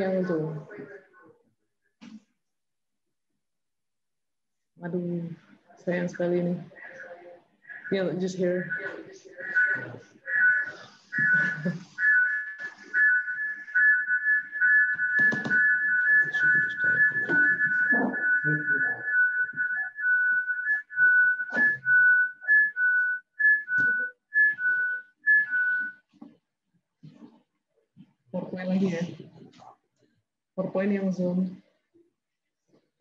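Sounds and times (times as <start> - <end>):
high whistle-like tone: 7.6 - 26.1.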